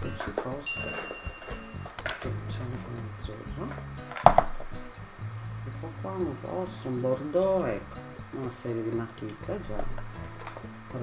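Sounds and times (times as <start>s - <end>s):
wooden pencils clinking: 0.0s - 2.4s
soft background music: 0.0s - 11.0s.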